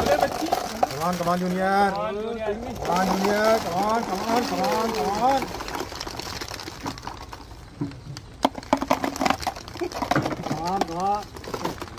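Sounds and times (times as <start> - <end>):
plastic balls clicking on floor: 0.0 - 11.9.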